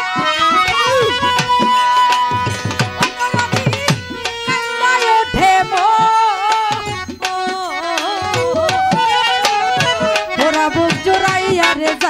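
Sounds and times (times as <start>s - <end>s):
melody instrument bending pitch: 0.0s - 11.7s
tabla strokes: 0.0s - 12.0s.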